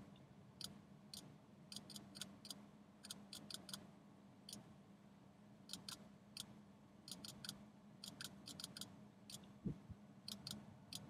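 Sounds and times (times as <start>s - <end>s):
low steady hum: 0.0s - 11.0s
computer mouse clicks: 0.6s - 3.8s, 5.7s - 6.5s, 7.1s - 9.6s, 10.3s - 11.0s.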